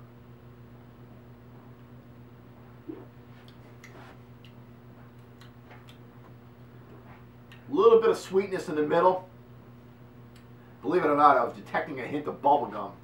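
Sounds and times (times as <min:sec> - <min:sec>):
steady low hum: 0:00.0 - 0:13.0
person swallowing beer: 0:02.7 - 0:04.6.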